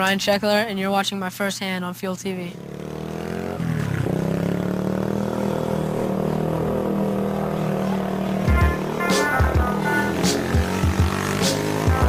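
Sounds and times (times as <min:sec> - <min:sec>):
small motorbike engine running: 0:02.5 - 0:12.0
music with drumbeat: 0:08.4 - 0:12.0.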